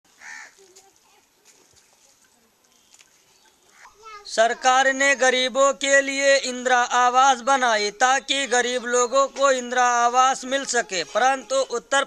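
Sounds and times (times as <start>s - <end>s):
crow cawing: 0.2s - 0.6s.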